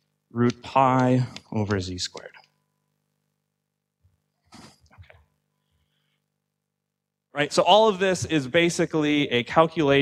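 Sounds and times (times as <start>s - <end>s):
faint room hum: 0.0s - 10.0s.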